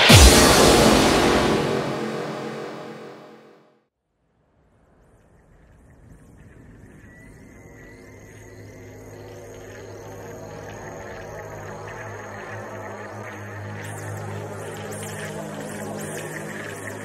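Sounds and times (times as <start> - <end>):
atmospheric drum and bass intro: 0.0 - 3.5
loud crash: 0.0 - 3.6.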